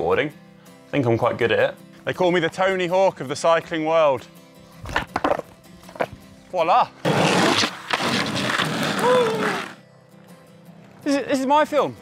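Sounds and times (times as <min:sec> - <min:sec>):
faint background music: 0:00.0 - 0:12.0
skateboard wheels rolling on tarmac: 0:07.0 - 0:09.8
person exclaiming: 0:08.8 - 0:09.7.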